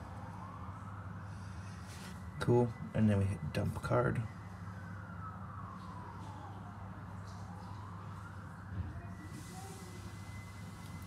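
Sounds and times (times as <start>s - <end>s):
distant siren wailing: 0.0s - 11.0s
steady low hum: 0.0s - 11.0s.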